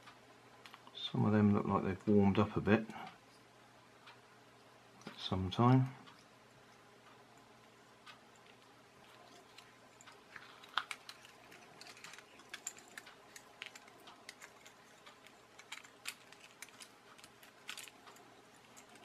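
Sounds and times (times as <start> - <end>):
small plastic parts clicking: 8.4 - 19.0.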